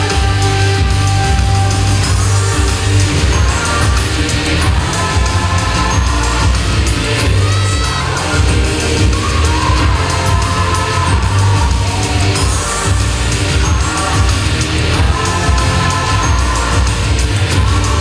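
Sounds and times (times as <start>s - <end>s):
female group vocals: 0.0s - 18.0s
heavy bass beat: 0.0s - 18.0s
live pop rock song: 0.0s - 18.0s.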